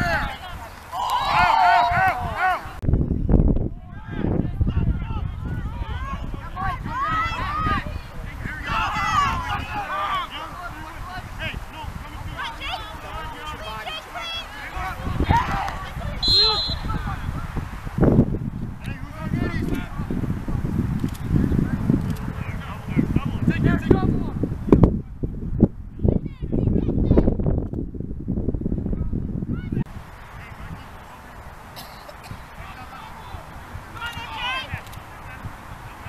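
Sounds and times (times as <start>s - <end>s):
voices calling and shouting: 0.0s - 2.8s, 3.6s - 25.2s, 28.9s - 36.0s
faint outdoor ambience: 0.0s - 36.0s
wind on microphone: 0.0s - 36.0s
short honking calls: 16.2s - 17.0s.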